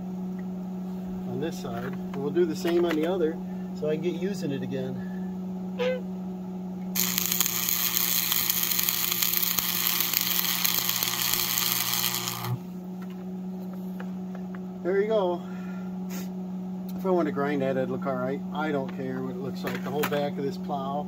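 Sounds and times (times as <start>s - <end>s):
steady hum: 0.0s - 21.0s
welding arc crackling and sizzling: 6.9s - 12.8s.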